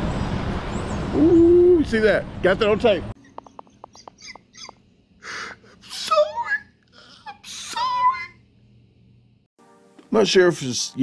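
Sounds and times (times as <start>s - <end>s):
man laughing breathily: 3.4s - 6.3s.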